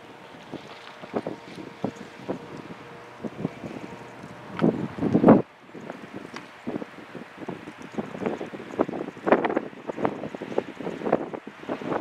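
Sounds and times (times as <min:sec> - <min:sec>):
distant diesel locomotive hum: 0:00.0 - 0:08.8
wind buffeting microphone: 0:00.0 - 0:12.0.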